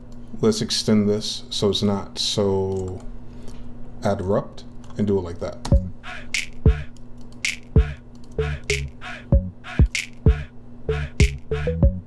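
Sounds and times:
kick drums: 0:05.7 - 0:05.9, 0:06.7 - 0:06.9, 0:07.8 - 0:08.0, 0:09.3 - 0:10.5, 0:11.2 - 0:12.0
hip-hop beat: 0:05.7 - 0:12.0
synth bass line: 0:05.8 - 0:06.0, 0:06.7 - 0:06.9, 0:07.8 - 0:09.6, 0:10.3 - 0:12.0
snap and clap hits: 0:06.4 - 0:06.7, 0:07.4 - 0:07.8, 0:09.9 - 0:10.3.

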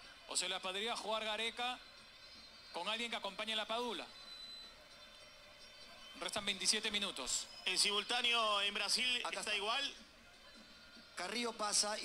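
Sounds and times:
faint stadium ambience hiss: 0:00.0 - 0:12.0.

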